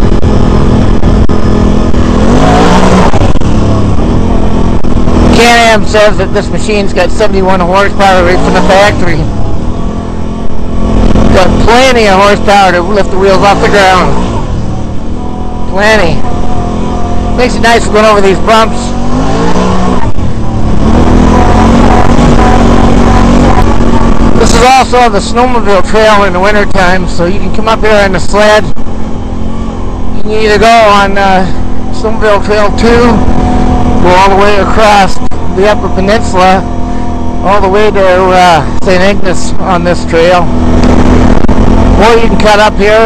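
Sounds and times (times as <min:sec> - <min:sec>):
atv engine running: 0:00.0 - 0:43.0.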